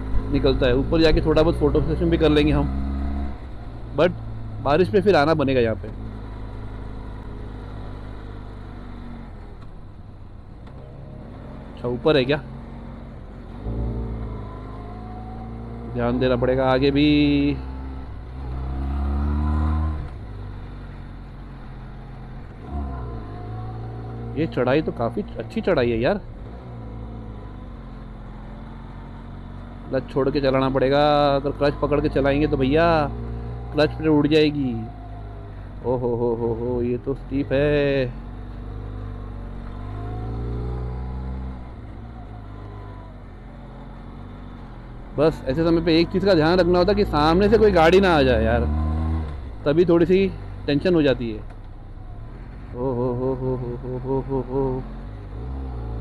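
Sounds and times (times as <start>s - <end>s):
motorcycle engine revving: 0.0s - 10.0s, 10.6s - 56.0s.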